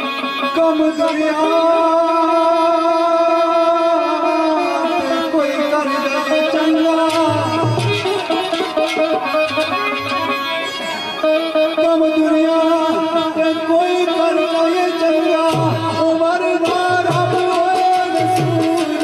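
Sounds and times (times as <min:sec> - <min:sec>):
plucked string instrument: 0:04.0 - 0:19.0.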